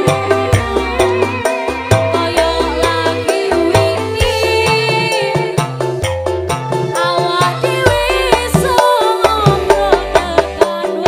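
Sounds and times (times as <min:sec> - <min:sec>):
woman singing: 0:00.0 - 0:05.9, 0:06.9 - 0:11.0
electric guitar: 0:00.0 - 0:11.0
live band music: 0:00.0 - 0:11.0.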